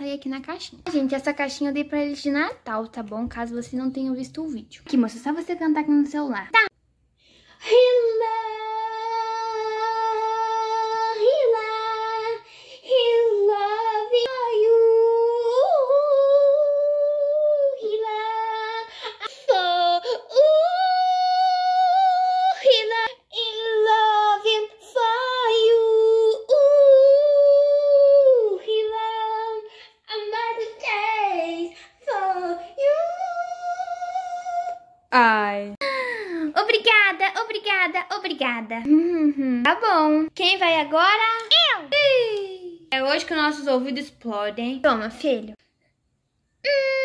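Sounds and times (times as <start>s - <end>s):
woman singing in a high voice: 7.7s - 35.0s.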